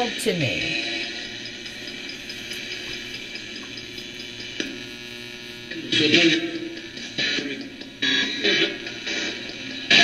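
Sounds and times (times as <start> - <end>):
steady amp hum with hiss: 0.0 - 10.0
faint rapid ticking: 0.7 - 5.6.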